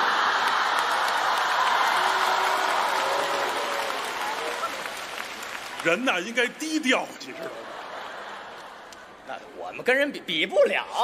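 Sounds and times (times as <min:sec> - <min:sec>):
audience clapping: 0:00.0 - 0:09.2
audience laughter: 0:07.3 - 0:09.1.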